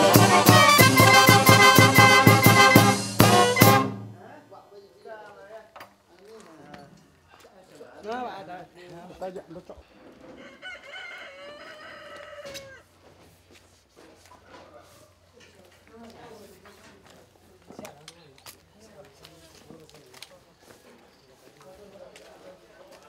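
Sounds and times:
saxophone: 0.0 - 4.1
drums: 0.0 - 4.2
trumpet: 0.0 - 4.3
rooster crowing: 10.3 - 12.9.

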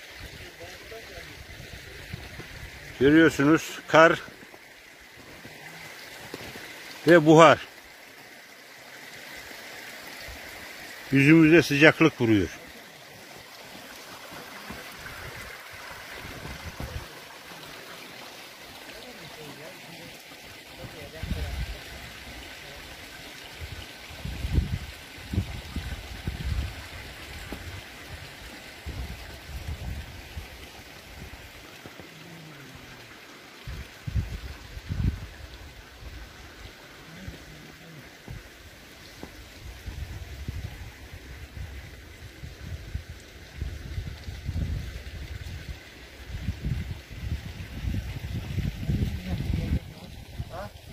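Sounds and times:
water rushing: 0.0 - 50.9
wind buffeting microphone: 46.3 - 50.9.

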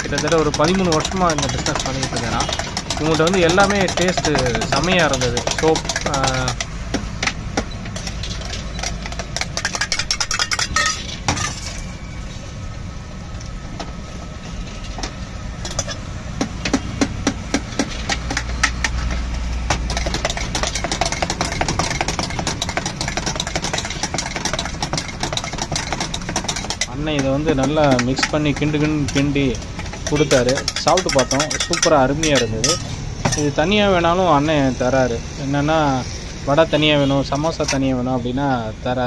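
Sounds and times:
steel spoon clinking in vessel: 8.0 - 11.6, 30.0 - 33.4.

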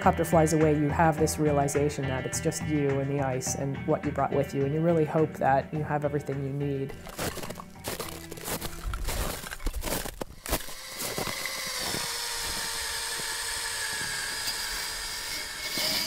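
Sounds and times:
steady whine: 8.7 - 16.0
helicopter running: 10.4 - 16.0.

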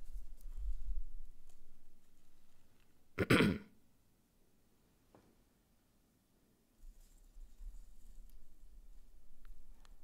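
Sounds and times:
man clearing his throat: 3.2 - 3.8.

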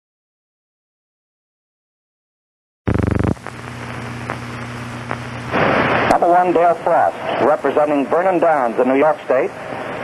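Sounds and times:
short buzzing tone: 2.9 - 3.6
film hiss and low hum: 2.9 - 10.0.

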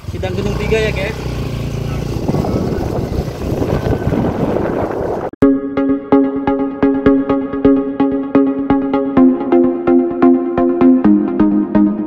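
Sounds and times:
motorcycle engine rumbling: 0.0 - 5.4.

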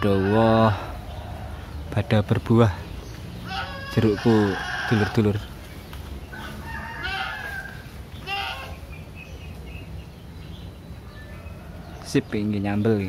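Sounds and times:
rooster crowing: 0.0 - 1.7, 3.5 - 5.5, 6.3 - 8.7.

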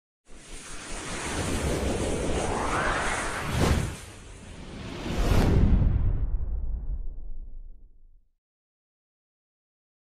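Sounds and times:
whoosh sound effect: 0.5 - 6.4.

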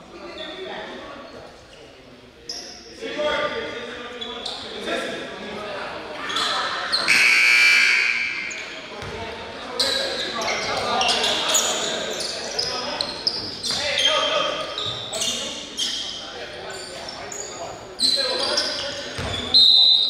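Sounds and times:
voices in a gym: 0.0 - 20.0
scoreboard horn: 7.1 - 8.4
basketballs bouncing: 9.0 - 9.3, 19.2 - 19.4.

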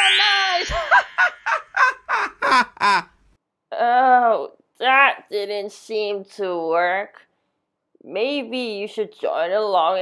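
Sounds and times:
woman speaking: 0.0 - 1.0, 3.7 - 7.2, 8.0 - 10.0
shimmering magic sound effect: 0.0 - 1.5
woman cackling: 0.4 - 3.1.

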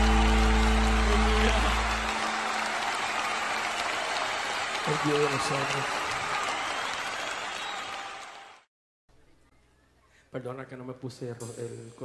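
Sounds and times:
audience applauding: 0.0 - 8.7.

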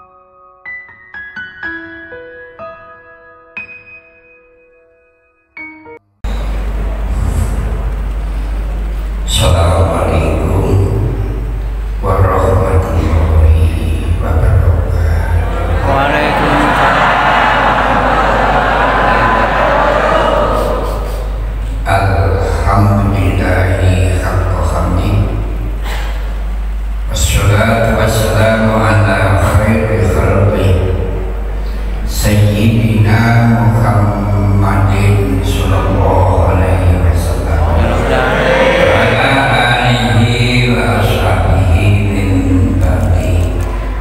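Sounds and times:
voices over public-address system: 15.5 - 17.0, 37.4 - 40.2
old man chanting over loudspeakers: 34.9 - 41.6.

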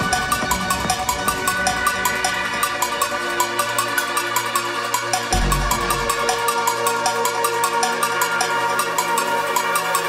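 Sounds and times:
deep bass note: 5.4 - 6.4.

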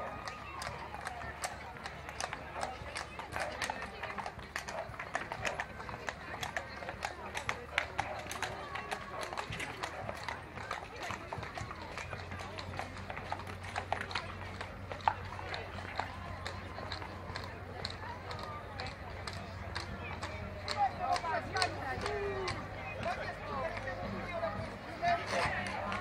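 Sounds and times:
horse hooves clip-clopping on asphalt: 0.0 - 26.0
murmur of crowd voices: 0.0 - 26.0.

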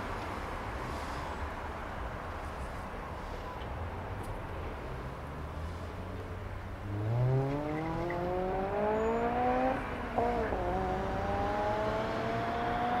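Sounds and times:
street traffic: 0.0 - 13.0
vehicle engine accelerating: 6.8 - 13.0.

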